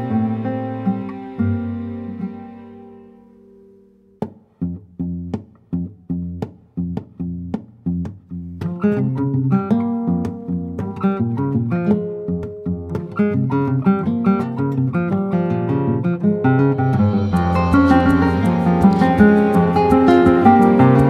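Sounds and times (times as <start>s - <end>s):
plucked string ensemble playing: 0.0s - 3.9s, 8.6s - 21.0s.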